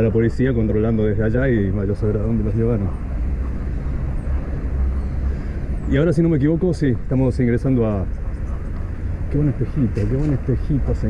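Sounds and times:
low rumble of motorway traffic: 0.0 - 11.0.

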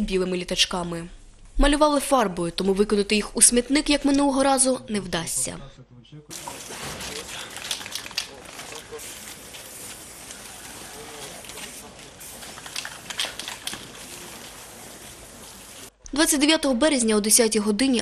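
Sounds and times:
crowd chatter: 6.3 - 16.0
steady hiss: 6.3 - 16.0.

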